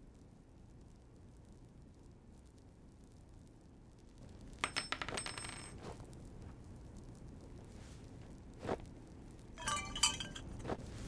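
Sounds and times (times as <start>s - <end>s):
small metal objects clinking: 9.6s - 10.7s.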